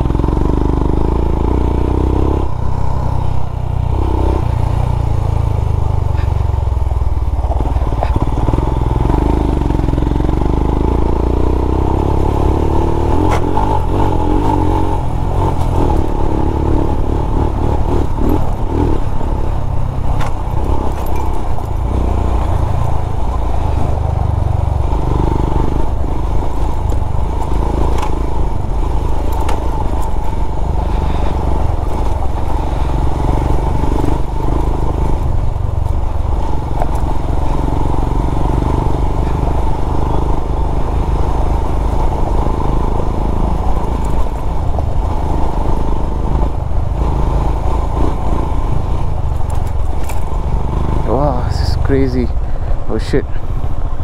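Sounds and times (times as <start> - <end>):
motorcycle engine running: 0.0 - 54.0.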